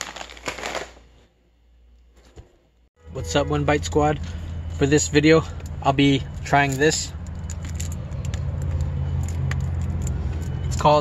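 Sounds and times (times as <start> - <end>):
car idling: 3.0 - 11.0.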